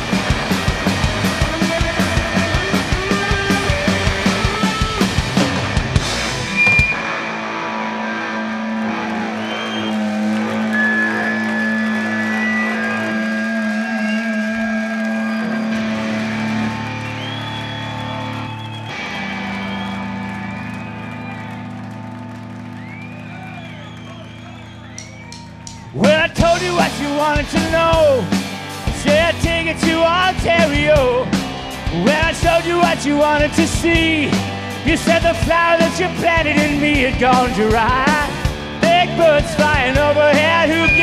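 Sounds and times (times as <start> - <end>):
droning electric guitar chords: 0.0 - 23.6
drums: 0.0 - 41.0.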